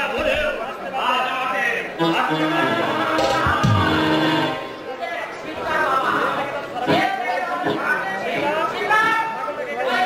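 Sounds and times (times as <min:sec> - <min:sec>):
sharp hit: 0:03.2 - 0:04.5.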